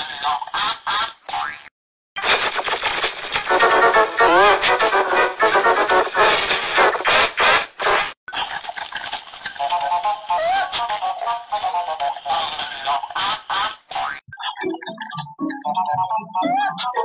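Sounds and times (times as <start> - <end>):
distorted warbling cartoon voice: 0.0 - 17.0.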